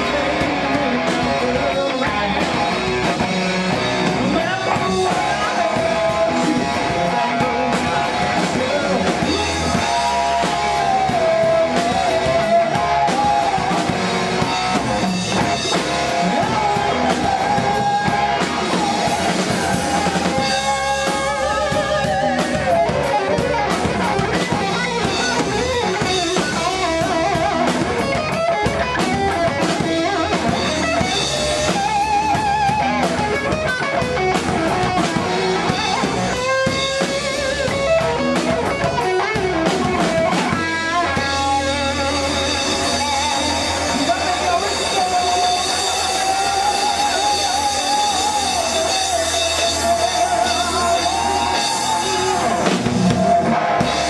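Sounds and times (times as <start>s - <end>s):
rock blues band playing: 0.0s - 54.0s.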